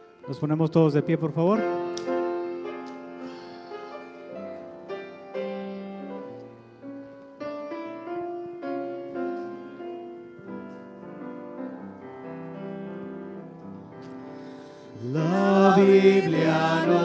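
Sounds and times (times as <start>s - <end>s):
piano playing hymn: 0.0s - 17.0s.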